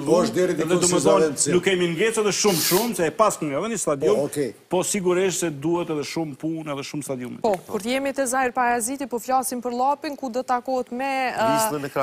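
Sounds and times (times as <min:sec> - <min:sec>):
man talking: 0:00.0 - 0:07.4
short hiss: 0:02.4 - 0:03.0.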